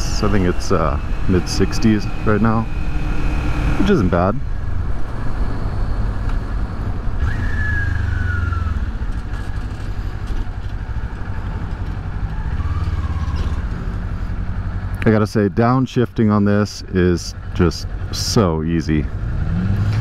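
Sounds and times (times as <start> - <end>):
motorcycle engine running: 0.0 - 15.4.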